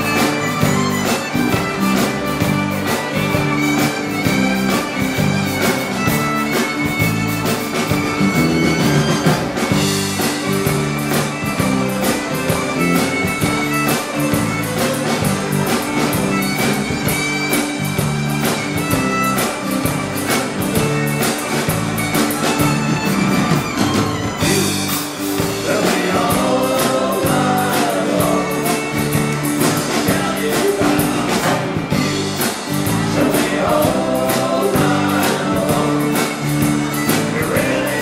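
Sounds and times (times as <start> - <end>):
acoustic guitars: 0.0 - 38.0
bass guitar: 0.0 - 38.0
drum kit beat: 0.0 - 38.0
fiddle: 0.0 - 38.0.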